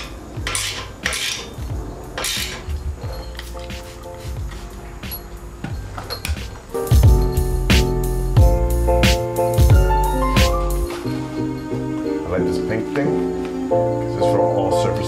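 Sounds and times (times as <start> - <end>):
metal tool clinking on bolts: 0.0 - 3.7, 4.6 - 6.5
background music: 0.0 - 15.0
spray bottle hissing: 3.2 - 5.3.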